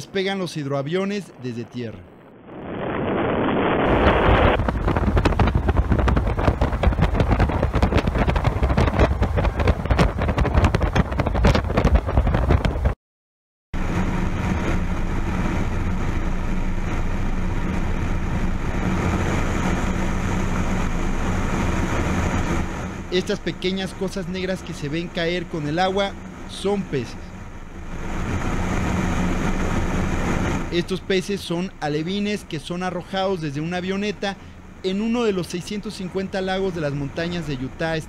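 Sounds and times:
wind buffeting microphone: 1.0 - 13.0
propeller plane engine flying past: 13.8 - 38.0
small plane engine droning: 13.8 - 38.0.

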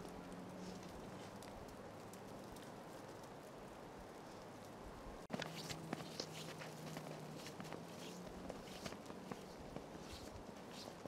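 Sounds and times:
footsteps crunching in snow: 5.3 - 11.0.

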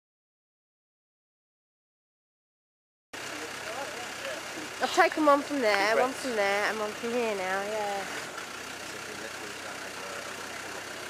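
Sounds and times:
diesel engine idling: 3.2 - 11.0
man speaking: 3.3 - 4.8, 8.8 - 11.0
faint background voices: 8.8 - 11.0.

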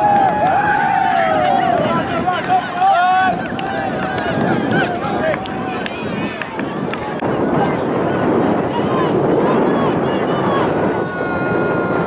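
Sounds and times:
players talking and calling out: 0.8 - 11.7.

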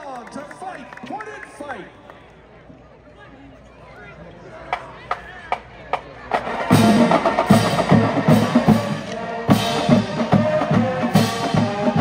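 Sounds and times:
marching band playing: 4.7 - 12.0.

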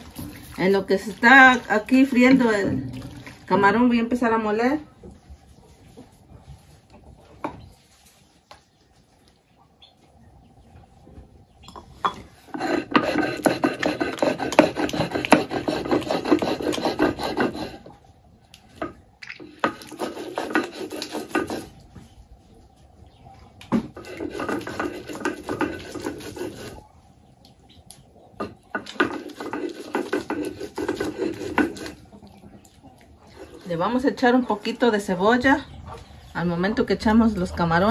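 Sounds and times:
stone roller grinding on stone: 12.4 - 17.9, 19.6 - 21.7, 23.8 - 26.8, 28.4 - 32.0.

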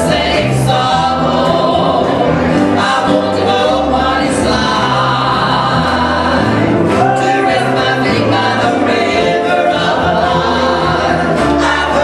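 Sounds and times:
piano accompaniment: 0.0 - 12.0
trio singing in harmony: 0.0 - 12.0.

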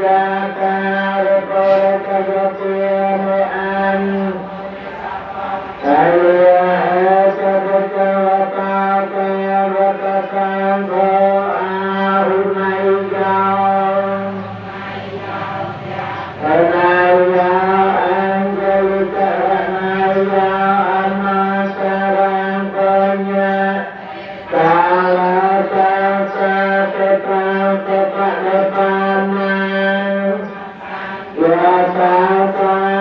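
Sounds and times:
person chanting: 0.0 - 33.0.

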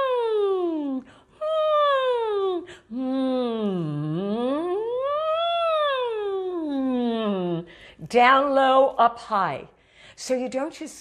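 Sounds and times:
woman singing vocal siren: 0.0 - 7.6.

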